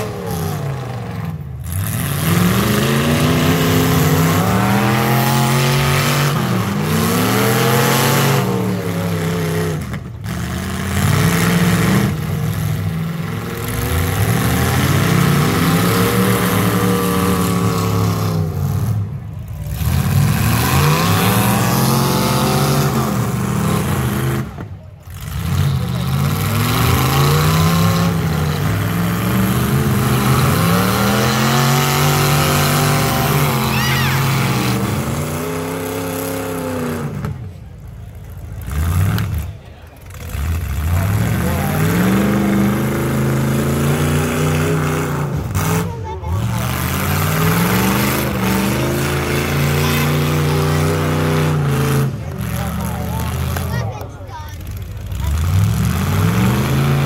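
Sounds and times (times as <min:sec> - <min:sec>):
car engines revving hard: 0:00.0 - 0:57.0.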